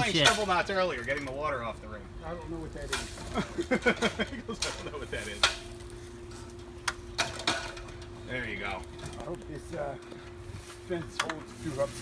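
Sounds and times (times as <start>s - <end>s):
faint steady hum: 0.0s - 12.0s
metal ladder knocking and clinking: 7.2s - 8.0s.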